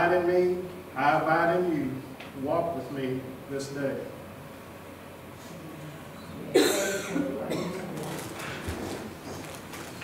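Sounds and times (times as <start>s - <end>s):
faint scattered sounds: 5.3s - 10.0s.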